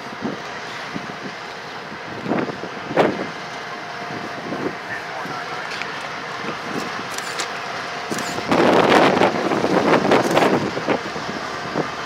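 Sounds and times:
diesel locomotives running: 0:00.0 - 0:12.0.

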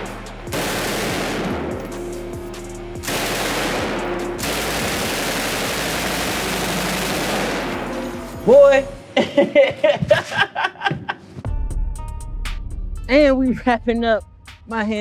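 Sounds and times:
machine gun firing bursts: 0:00.5 - 0:01.8, 0:03.0 - 0:07.9.

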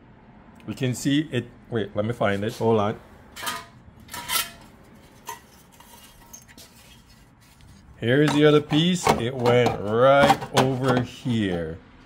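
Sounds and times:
sheet metal pieces clinking: 0:03.4 - 0:07.2.

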